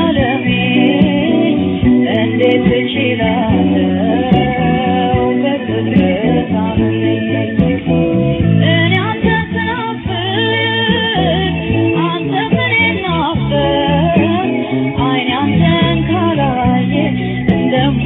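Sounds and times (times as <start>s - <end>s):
person singing with band: 0.0s - 18.0s.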